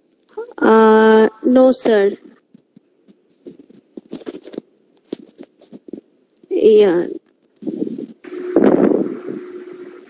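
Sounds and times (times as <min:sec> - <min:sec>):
faint clicks and crackling rustles: 0:00.0 - 0:00.6, 0:01.8 - 0:08.7.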